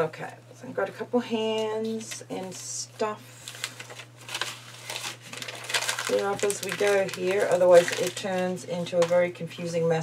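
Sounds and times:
paper rustling and crinkling: 3.3s - 9.1s.

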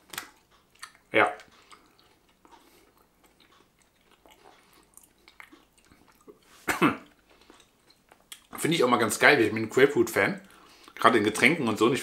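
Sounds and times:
person chewing gum: 0.0s - 8.6s, 10.4s - 11.0s.

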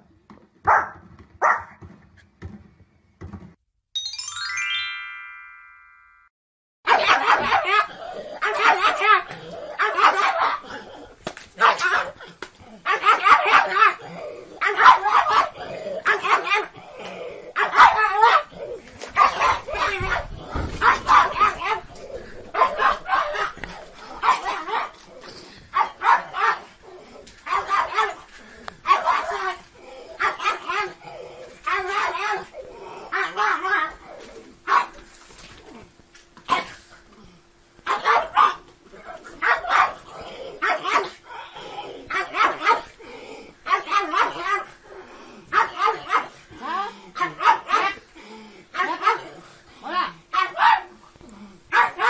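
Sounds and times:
dog barking: 0.7s - 1.8s, 6.9s - 10.6s, 11.6s - 12.2s, 12.9s - 14.0s, 14.6s - 16.7s, 17.6s - 18.5s, 19.2s - 21.8s, 22.5s - 24.9s, 25.8s - 26.7s, 27.5s - 28.2s, 28.9s - 29.6s, 30.2s - 31.0s, 34.7s - 35.0s, 37.9s - 41.2s, 42.1s - 42.9s, 43.7s - 44.7s, 45.5s - 46.4s, 47.2s - 48.0s, 48.8s - 49.3s, 50.3s - 50.9s, 51.7s - 52.0s
short rising chime: 4.0s - 6.3s.

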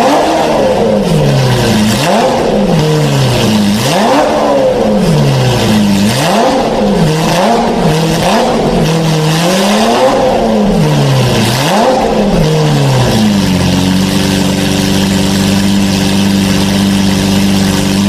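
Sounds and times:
car engine revving: 0.0s - 18.0s.

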